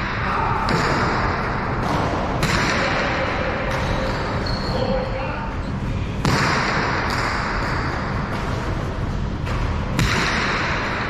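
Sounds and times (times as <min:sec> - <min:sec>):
steady hall noise: 0:00.0 - 0:11.0
ball cracking against wall: 0:09.4 - 0:10.9.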